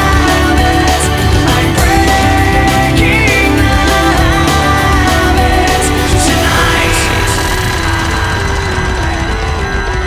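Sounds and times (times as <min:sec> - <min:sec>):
instrumental rock music: 0:00.0 - 0:10.0.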